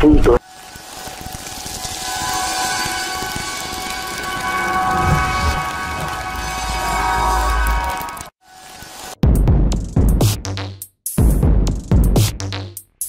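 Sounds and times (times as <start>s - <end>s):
whoosh of noise: 0.4s - 8.3s
held cluster of steady tones: 0.4s - 8.4s
low rumble: 2.0s - 8.3s.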